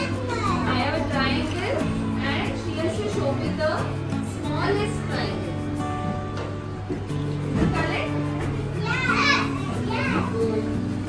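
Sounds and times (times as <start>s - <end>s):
young children's voices: 0.0s - 1.2s, 8.7s - 11.0s
background music: 0.0s - 11.0s.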